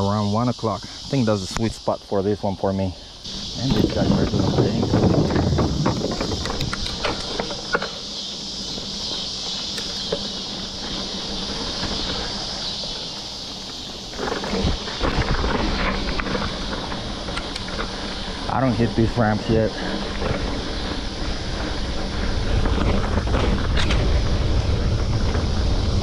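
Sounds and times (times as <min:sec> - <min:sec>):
bike tyres on dirt trail: 0:00.0 - 0:26.0
insects chorus: 0:00.0 - 0:26.0.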